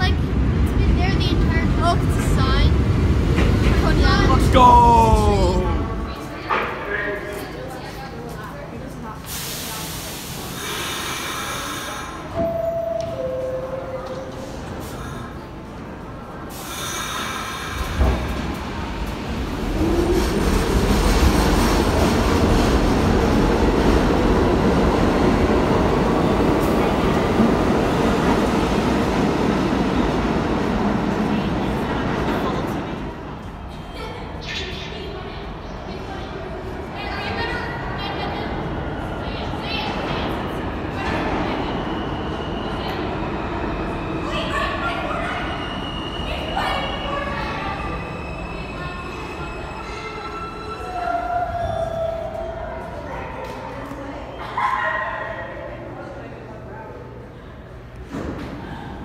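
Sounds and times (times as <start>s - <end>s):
subway train rumbling: 0.0s - 59.0s.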